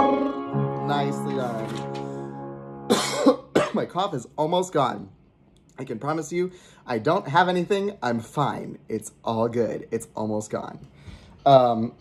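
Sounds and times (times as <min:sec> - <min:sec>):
sustained piano chord: 0:00.0 - 0:03.7
man coughing: 0:02.9 - 0:04.0.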